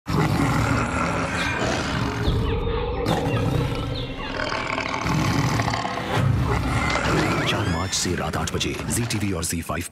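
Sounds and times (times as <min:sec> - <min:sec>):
lion roaring: 0:00.1 - 0:07.9.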